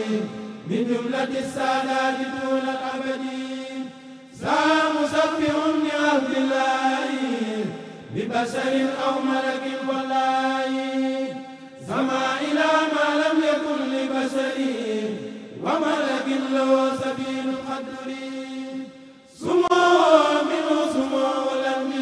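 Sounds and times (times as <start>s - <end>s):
men chanting in unison: 0.0s - 22.0s.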